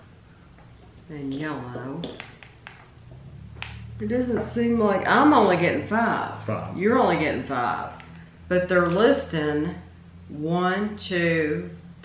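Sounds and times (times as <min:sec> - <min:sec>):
low steady hum: 0:00.0 - 0:12.0
faint clicks and taps: 0:00.5 - 0:04.6.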